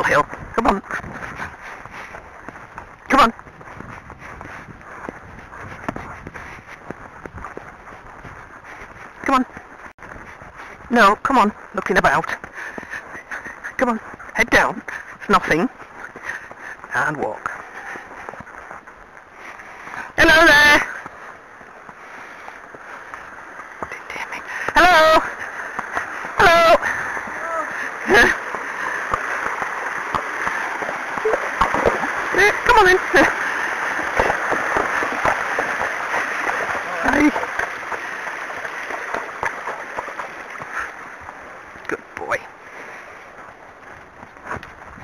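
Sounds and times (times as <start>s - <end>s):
hooves splashing in water: 0.0s - 45.0s
stream rushing: 19.4s - 45.0s.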